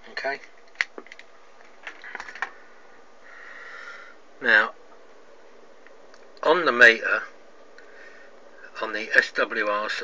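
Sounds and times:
camera handling clicks and taps: 0.6s - 1.3s.

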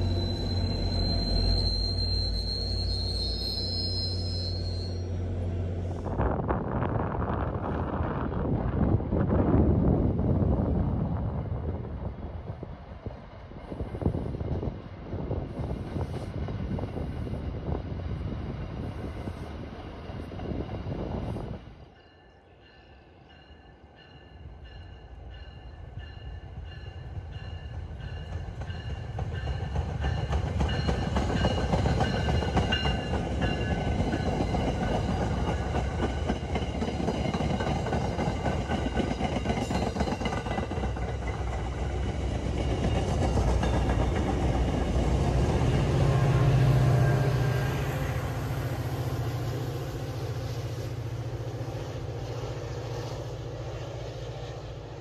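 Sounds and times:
train wheels on rails: 0.0s - 55.0s.

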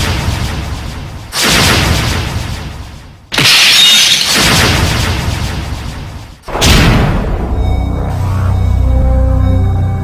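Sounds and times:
glass shattering crash: 3.3s - 4.4s.

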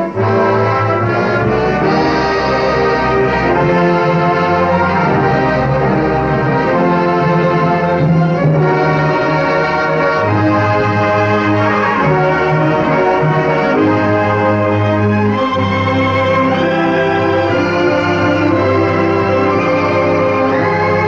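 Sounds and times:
orchestral music with brass chords: 0.0s - 21.0s.

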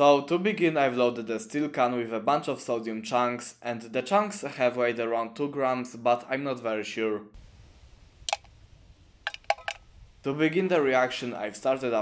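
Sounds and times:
light clicks: 8.3s - 8.5s.

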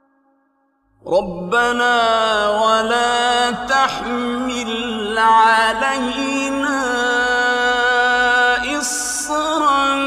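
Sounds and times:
man chanting melodic recitation: 1.0s - 10.0s.

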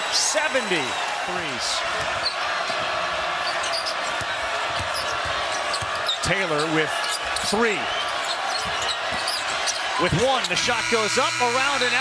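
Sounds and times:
arena crowd noise: 0.0s - 12.0s
sneaker squeaks: 3.4s - 9.9s.

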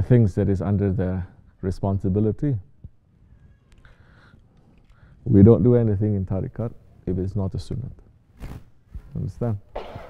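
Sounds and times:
faint high-pitched cry: 3.2s - 4.1s.

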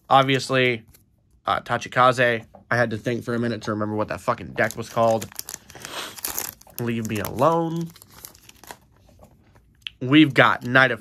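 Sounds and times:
cards and foil wrapper rustling: 4.4s - 9.6s.

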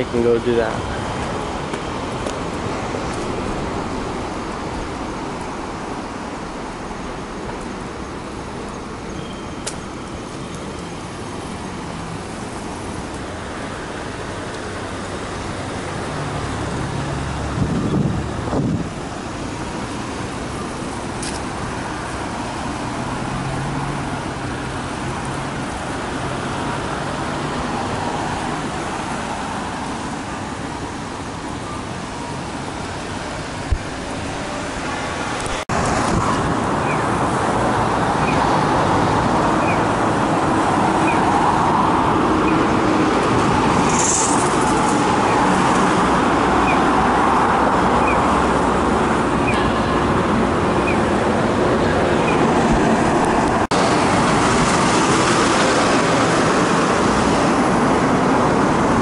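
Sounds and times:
road traffic: 0.0s - 59.0s.

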